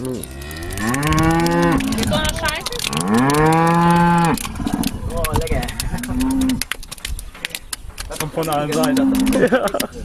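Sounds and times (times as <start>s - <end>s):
cow mooing: 0.1s - 2.2s, 2.8s - 4.9s, 5.9s - 6.6s, 8.8s - 9.4s.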